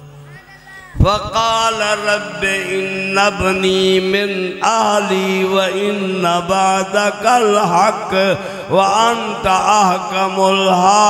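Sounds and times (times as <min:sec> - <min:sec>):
man chanting through microphone: 0:00.0 - 0:11.0.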